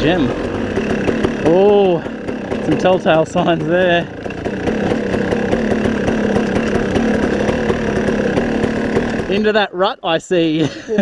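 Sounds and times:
dirt bike engine running: 0.0s - 10.7s.

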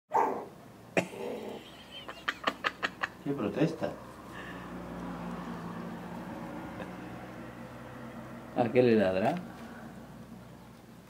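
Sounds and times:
puppy barking: 0.1s - 0.5s.

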